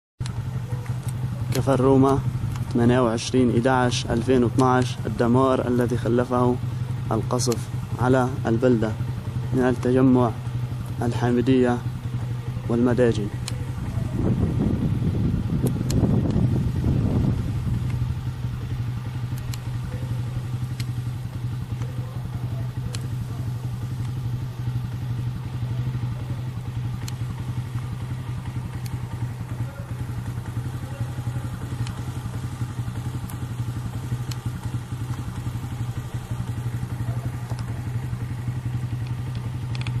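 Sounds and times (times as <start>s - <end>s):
faint clicks: 0.2s - 2.8s, 20.5s - 22.0s, 23.8s - 24.2s, 26.8s - 40.0s
vehicle engine humming: 0.2s - 40.0s.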